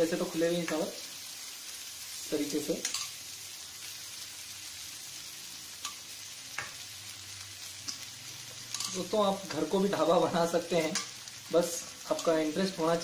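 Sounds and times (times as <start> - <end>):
food sizzling in a pan: 0.0 - 13.0.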